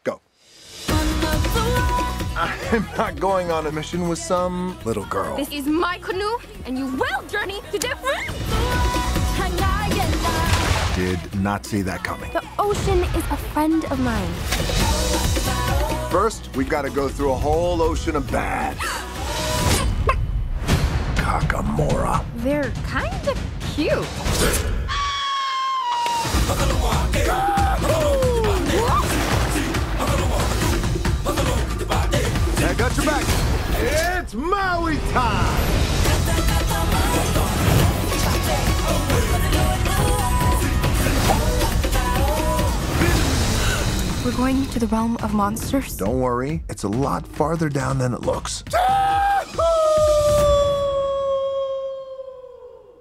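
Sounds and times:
trailer music with drum hits: 0:00.4 - 0:24.9, 0:26.2 - 0:51.0
cartoon rooster screaming: 0:24.9 - 0:26.3, 0:48.9 - 0:53.0
man yelling: 0:27.1 - 0:29.1.

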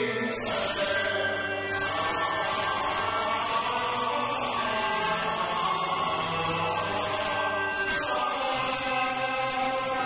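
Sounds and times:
opera singing: 0:00.0 - 0:10.0.

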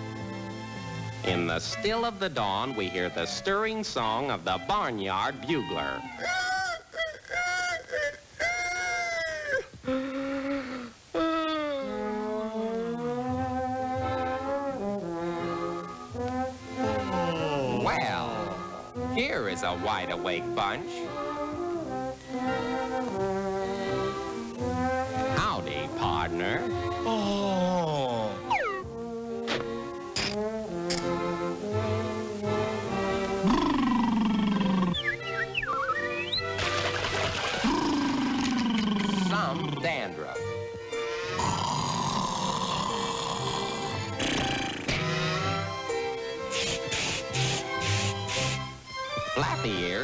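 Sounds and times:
orchestral cartoon music: 0:00.0 - 0:06.4, 0:11.8 - 0:50.0.

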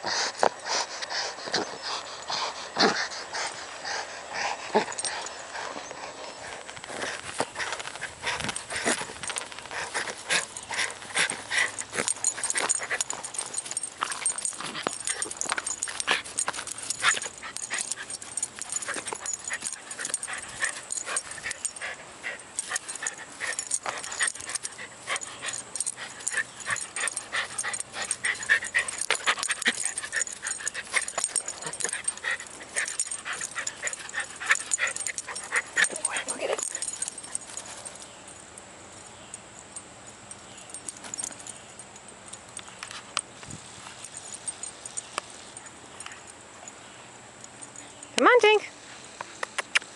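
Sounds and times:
jostling and rustling: 0:00.0 - 0:49.4
dog playing breath and mouth sounds: 0:00.0 - 0:49.9.

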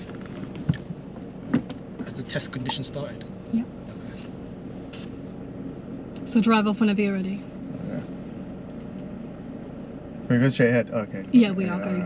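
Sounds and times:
low car hum: 0:00.0 - 0:12.0.

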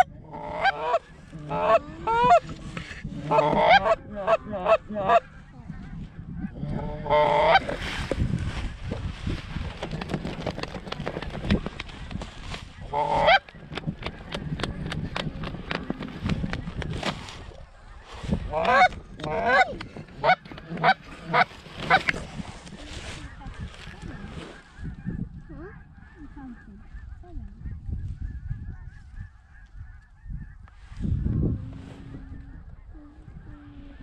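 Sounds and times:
goose honking and clucking: 0:00.0 - 0:07.8, 0:12.8 - 0:15.1, 0:17.5 - 0:30.7.

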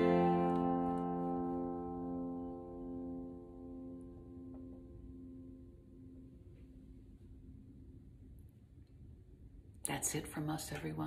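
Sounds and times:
acoustic guitar chord ringing: 0:00.0 - 0:07.4.

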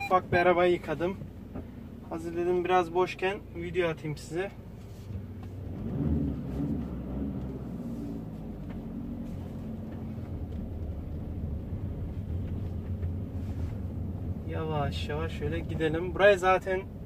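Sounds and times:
van engine and road noise: 0:00.0 - 0:17.0.

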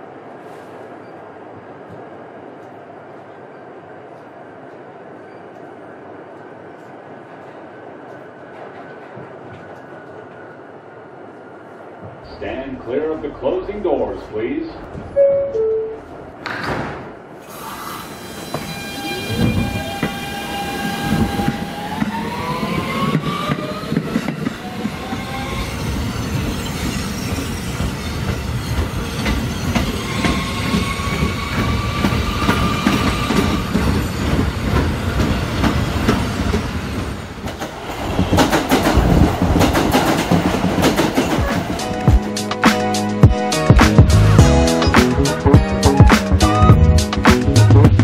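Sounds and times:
train wheels on rails: 0:00.0 - 0:12.3, 0:16.0 - 0:42.8
rail clatter: 0:18.4 - 0:42.3.

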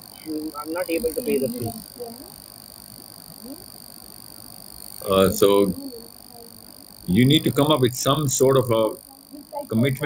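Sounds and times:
high-pitched whine and hiss: 0:00.0 - 0:10.0.

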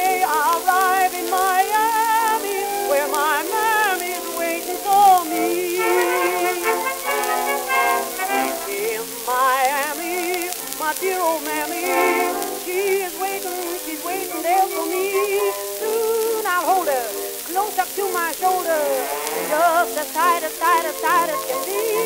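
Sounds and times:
record surface hiss and crackle: 0:00.0 - 0:22.0
orchestra playing: 0:01.0 - 0:09.3, 0:11.8 - 0:12.7, 0:18.5 - 0:22.0.

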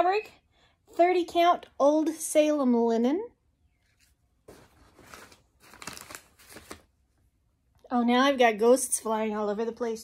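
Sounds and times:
packaging rustling: 0:04.5 - 0:07.0.

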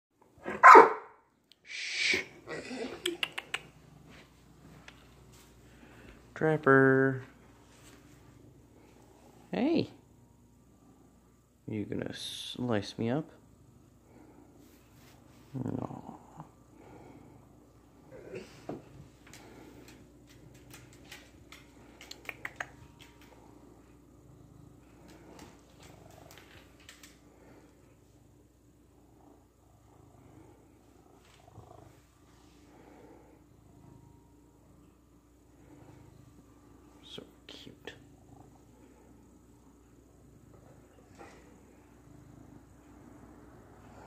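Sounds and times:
dog barking: 0:00.5 - 0:01.2
faint clicks: 0:19.2 - 0:23.6, 0:25.0 - 0:27.3.

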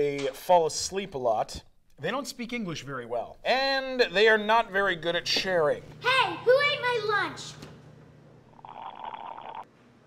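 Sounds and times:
loud slurp from a drink: 0:08.6 - 0:09.6.

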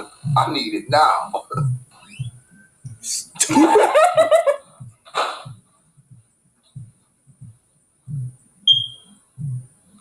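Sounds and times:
heartbeat double thumps: 0:00.0 - 0:10.0
short high beep: 0:08.7 - 0:09.1.

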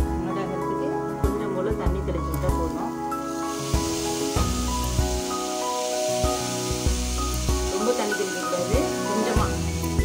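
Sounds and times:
background music: 0:00.0 - 0:10.0
potatoes sizzling in a pan: 0:01.5 - 0:10.0.

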